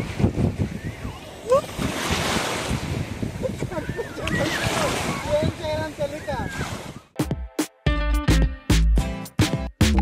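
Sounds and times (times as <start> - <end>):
small waves washing on sand: 0.0 - 7.1
wind buffeting microphone: 0.0 - 7.2.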